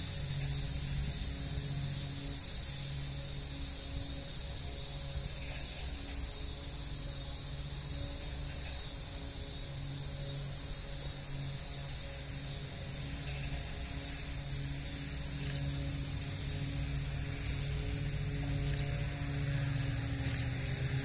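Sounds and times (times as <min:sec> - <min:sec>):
diesel locomotive engine hum: 0:00.0 - 0:21.0
high hiss: 0:00.0 - 0:21.0
faint ticks: 0:15.3 - 0:15.8, 0:18.6 - 0:19.0.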